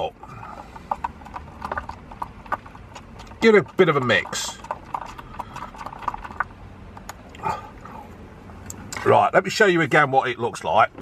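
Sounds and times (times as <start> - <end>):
stirrer scraping in paper cup: 0.0 - 7.1.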